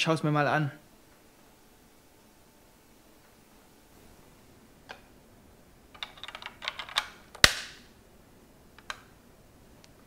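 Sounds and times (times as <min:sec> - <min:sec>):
plastic toy parts clicking: 0:06.0 - 0:07.6
loud sharp plastic snap: 0:07.0 - 0:07.9.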